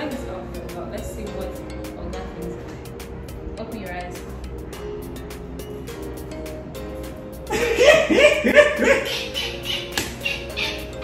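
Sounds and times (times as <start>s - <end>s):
soft background music: 0.0s - 11.0s
man laughing loudly: 7.5s - 11.0s.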